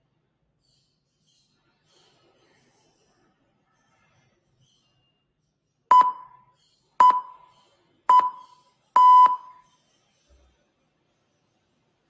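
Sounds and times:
long electronic beep: 5.9s - 6.3s, 7.0s - 7.4s, 8.1s - 9.5s
short electronic beeps: 5.9s - 6.4s, 7.0s - 7.4s, 8.1s - 9.6s.

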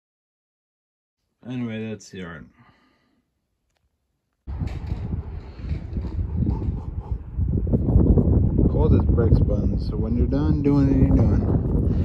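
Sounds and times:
wind buffeting microphone: 4.5s - 12.0s.

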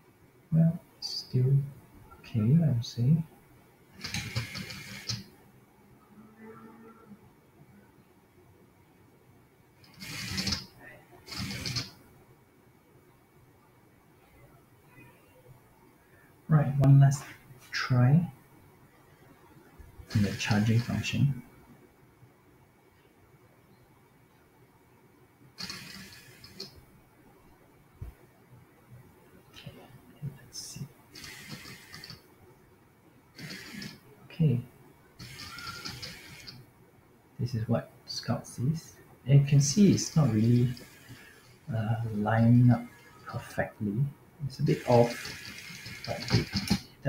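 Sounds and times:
robot wheels and motors whirring: 4.0s - 5.3s, 9.9s - 10.7s, 11.3s - 12.0s, 25.6s - 26.8s, 31.2s - 32.2s, 33.4s - 34.0s, 35.2s - 36.6s, 39.9s - 41.7s, 44.6s - 46.9s.

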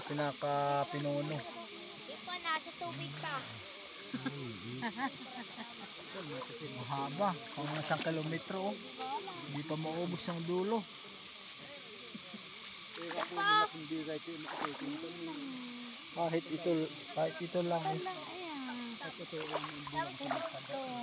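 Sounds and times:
shallow river water running: 0.0s - 21.0s
people talking: 4.1s - 10.8s, 13.0s - 21.0s.

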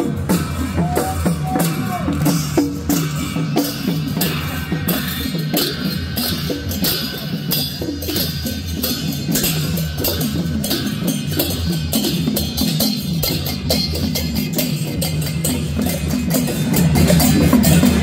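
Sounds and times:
brass hand cymbals clashing: 0.0s - 18.0s
drumming: 0.0s - 18.0s.

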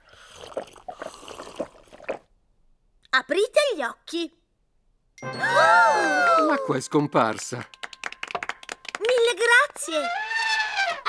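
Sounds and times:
cartoon gulping: 0.0s - 2.4s.

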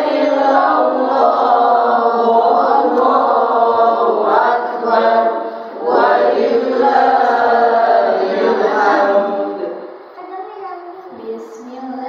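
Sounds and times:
women chanting in unison: 0.0s - 9.7s.

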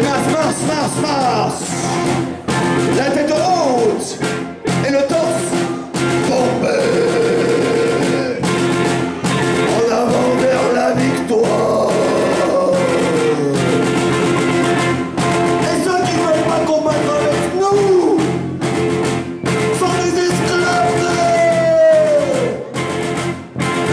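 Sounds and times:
man singing: 0.0s - 2.1s, 2.8s - 4.2s, 4.8s - 8.5s, 9.6s - 14.0s, 15.6s - 18.3s, 19.7s - 22.7s
drum kit: 0.0s - 23.9s
electric guitar: 0.0s - 23.9s
rock band playing live: 0.0s - 23.9s.

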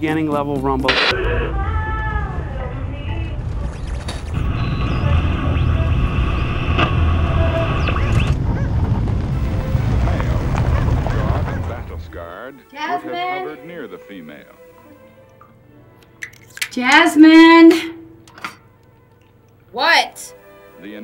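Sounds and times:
radio tones and static: 0.9s - 1.5s, 4.4s - 12.2s
radio tuning whistles: 0.9s - 1.5s, 4.3s - 8.7s.

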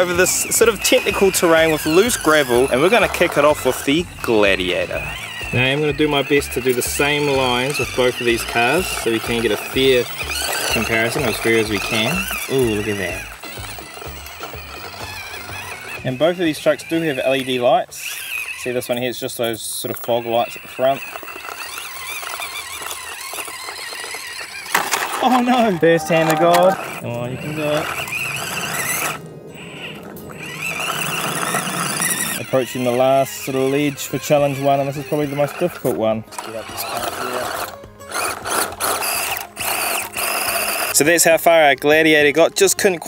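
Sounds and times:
toy car electric motor whining: 0.0s - 43.0s
toy truck clattering over: 0.0s - 43.0s.

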